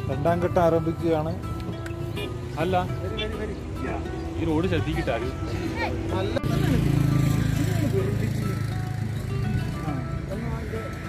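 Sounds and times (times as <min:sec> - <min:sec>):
background music: 0:00.0 - 0:11.0
voices talking: 0:00.0 - 0:11.0.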